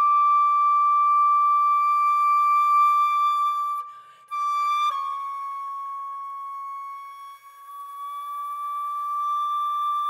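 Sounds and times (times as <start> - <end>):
flute holding high note: 0.0 - 10.0.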